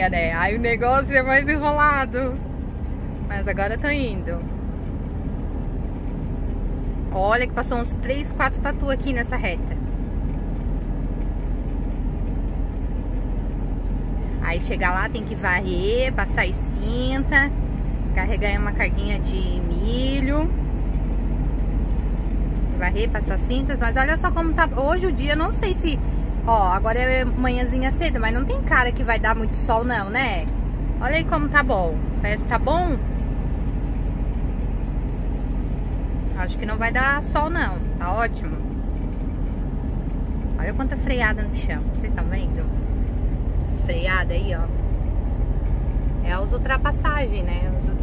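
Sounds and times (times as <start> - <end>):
road noise: 0.0 - 48.0
truck engine drone: 0.0 - 48.0.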